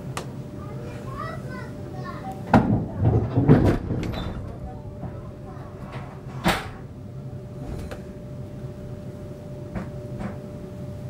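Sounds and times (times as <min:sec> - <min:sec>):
voices in train carriage: 0:00.0 - 0:11.0
child's voice: 0:00.6 - 0:03.1, 0:04.6 - 0:06.1.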